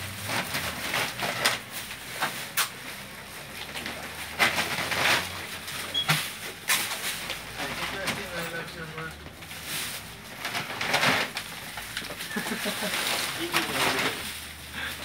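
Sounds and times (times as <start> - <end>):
shopping sack rustling: 0.0 - 15.0.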